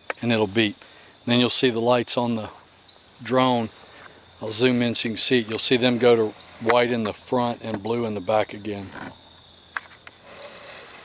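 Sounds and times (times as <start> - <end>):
insect chirring: 0.0 - 11.0.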